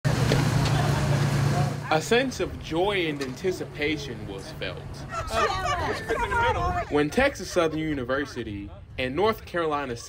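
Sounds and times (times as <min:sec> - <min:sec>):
bus engine idling: 0:00.1 - 0:08.1.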